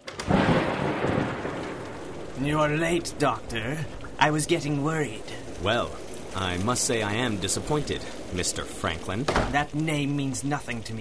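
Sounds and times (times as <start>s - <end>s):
thunderclap: 0.0s - 10.8s
steady rain: 0.0s - 11.0s.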